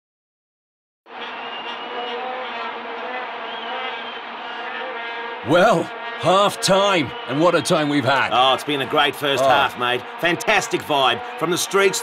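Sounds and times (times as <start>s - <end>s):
stadium crowd noise: 1.1s - 12.0s
vuvuzela horns droning: 1.1s - 12.0s.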